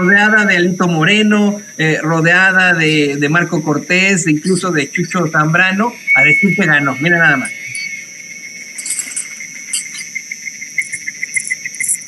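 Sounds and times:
insect pulsing chirp: 0:00.0 - 0:12.0
insect trilling: 0:00.0 - 0:12.0.

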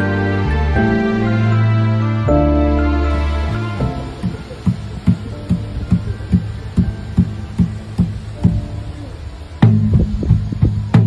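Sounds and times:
hand drum strokes: 0:03.1 - 0:11.0.

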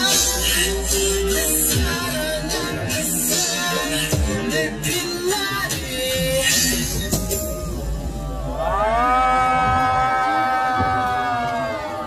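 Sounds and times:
slowed cheering scream: 0:07.3 - 0:12.0.

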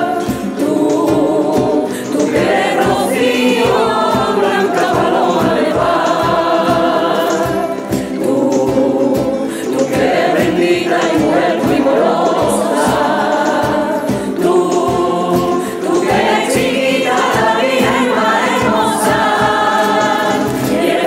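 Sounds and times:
choir singing in harmony: 0:00.0 - 0:21.0
guitars strummed in rumba rhythm: 0:00.0 - 0:21.0.

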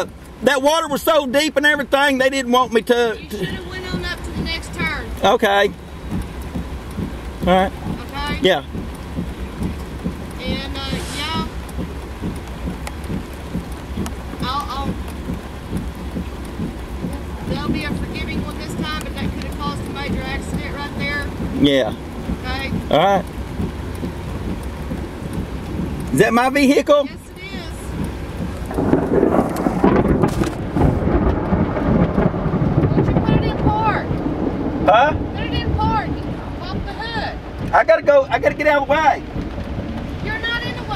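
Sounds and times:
steady rain: 0:00.0 - 0:40.9
vehicle engine idling: 0:00.0 - 0:40.9.

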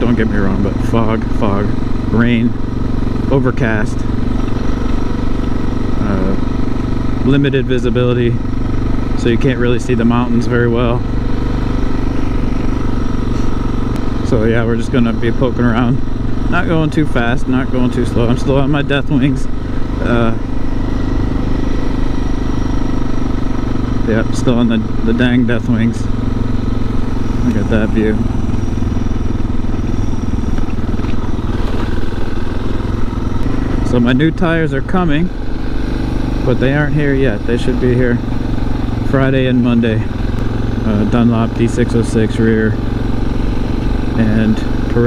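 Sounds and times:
motorcycle engine running steadily: 0:00.0 - 0:45.0.

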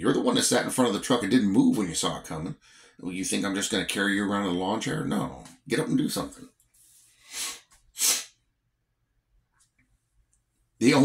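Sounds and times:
man sneezing: 0:07.3 - 0:08.4.

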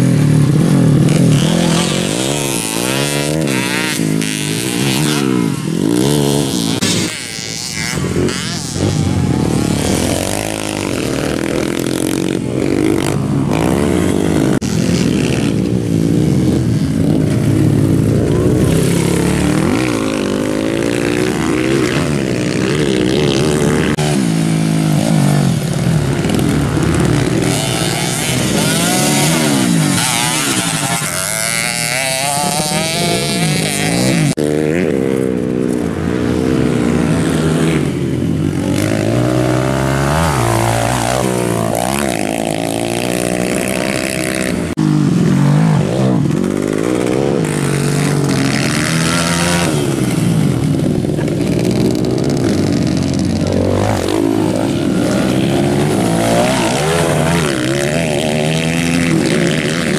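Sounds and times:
dirt bike engines revving: 0:00.0 - 0:59.9.

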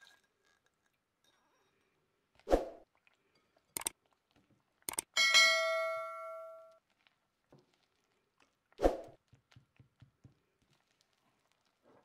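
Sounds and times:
short clicks: 0:03.8 - 0:04.0, 0:04.9 - 0:05.1
bell ding: 0:05.2 - 0:06.7.

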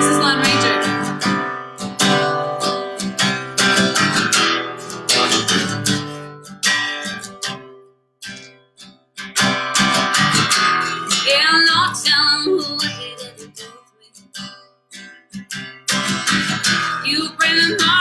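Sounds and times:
acoustic guitar strumming: 0:00.0 - 0:18.0.

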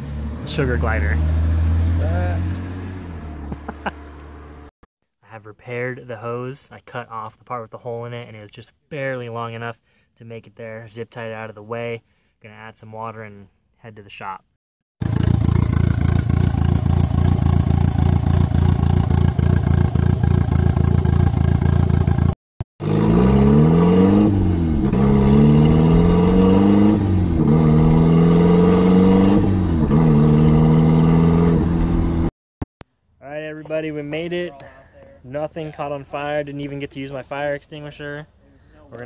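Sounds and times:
car accelerating through gears: 0:00.0 - 0:04.7, 0:22.8 - 0:32.3.

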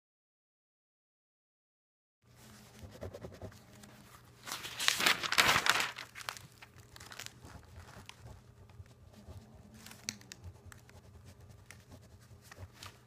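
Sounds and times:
pen scratching on paper: 0:02.6 - 0:04.0, 0:07.4 - 0:13.0
paper rustling: 0:03.5 - 0:13.0.

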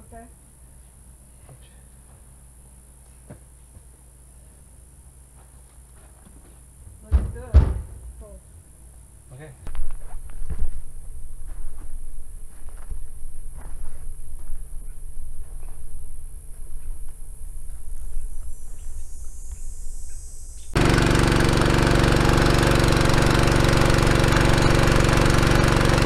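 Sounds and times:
heavy knocks on wooden stand: 0:07.0 - 0:08.2
faint insect buzz: 0:16.6 - 0:20.8.

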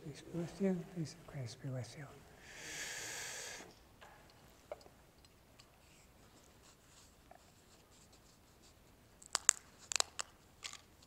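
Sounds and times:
wafer cracking: 0:09.2 - 0:11.0.

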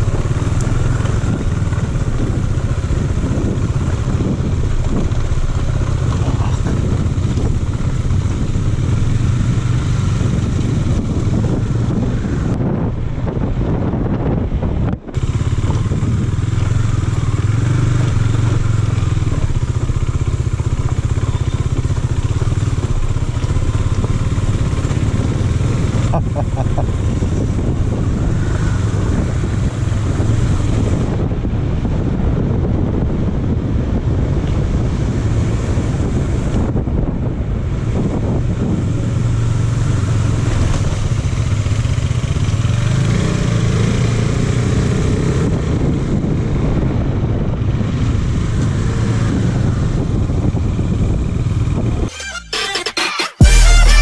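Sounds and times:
motorcycle engine running: 0:00.0 - 0:52.1
wind and road noise: 0:00.0 - 0:52.1.

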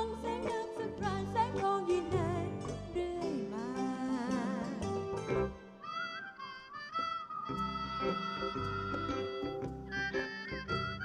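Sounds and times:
woman singing with vibrato: 0:00.0 - 0:05.0
high held melody line: 0:04.1 - 0:11.0
band accompaniment: 0:04.8 - 0:11.0.

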